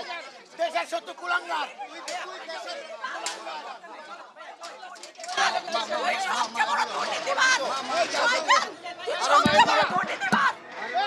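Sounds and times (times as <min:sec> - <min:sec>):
people talking and shouting: 0:00.0 - 0:11.0.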